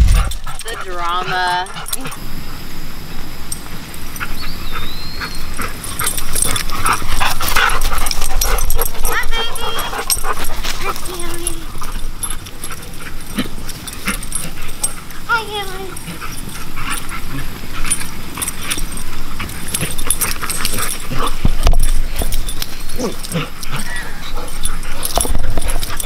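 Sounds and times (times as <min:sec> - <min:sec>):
dogs scuffling and knocking: 0:17.8 - 0:26.0
dogs crying high-pitched: 0:21.9 - 0:26.0.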